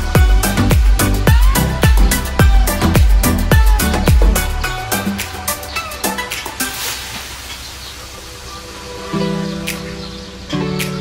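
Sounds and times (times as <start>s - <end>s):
faint background music: 0.0s - 11.0s
water spraying from hose: 4.4s - 10.9s.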